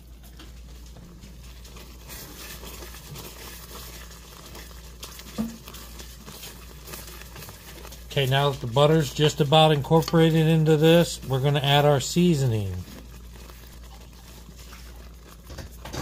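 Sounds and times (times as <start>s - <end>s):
sauce bubbling: 0.0s - 16.0s
spoon scraping sauce in skillet: 0.1s - 16.0s.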